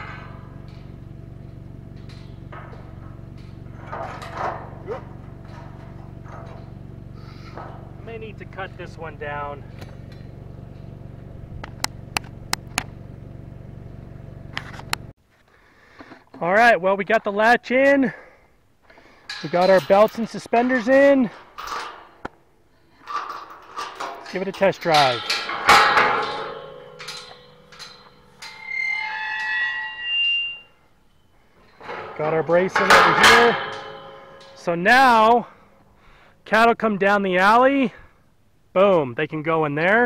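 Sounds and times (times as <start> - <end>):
metal latch clicks: 0.0 - 6.9, 23.0 - 29.4, 31.8 - 34.7
metal gate clang: 0.0 - 15.0, 19.0 - 35.6
engine idling: 0.0 - 15.1
high squealing tones: 26.3 - 32.8.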